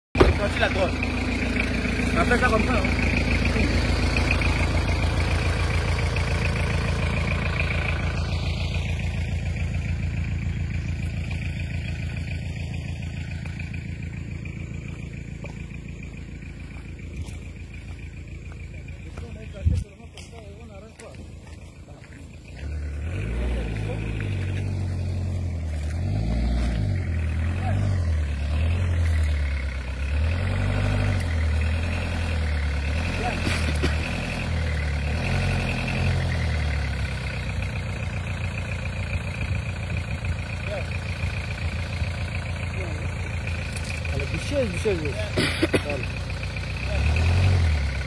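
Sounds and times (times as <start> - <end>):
truck engine revving: 0.1 - 48.0.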